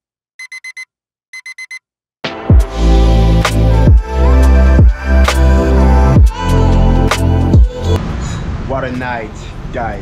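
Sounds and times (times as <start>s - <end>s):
digital alarm clock beeping: 0.4s - 1.9s
loud music with heavy bass: 2.3s - 8.0s.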